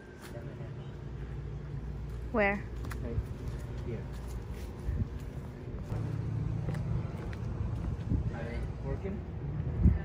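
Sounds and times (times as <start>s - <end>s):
faint footsteps: 2.0s - 8.6s.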